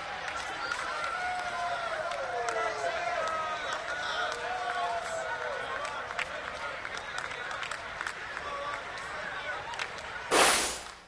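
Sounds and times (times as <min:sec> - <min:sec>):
scattered clapping: 0:00.0 - 0:11.0
loud burst of noise: 0:10.3 - 0:11.0.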